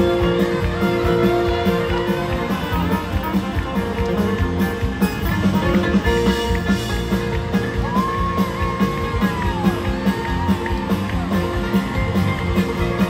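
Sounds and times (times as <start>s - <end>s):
bass: 0.0s - 13.0s
fiddle: 0.0s - 13.0s
guitars: 0.0s - 13.0s
steady drum beat: 0.0s - 13.0s.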